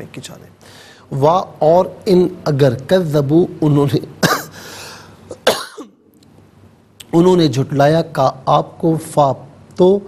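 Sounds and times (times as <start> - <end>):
man coughing: 4.2 - 4.6, 5.3 - 6.0.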